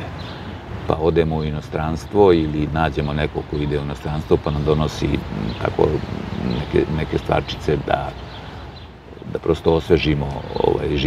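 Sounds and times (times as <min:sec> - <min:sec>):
man talking: 0:00.0 - 0:00.2, 0:00.8 - 0:08.3, 0:09.2 - 0:11.0.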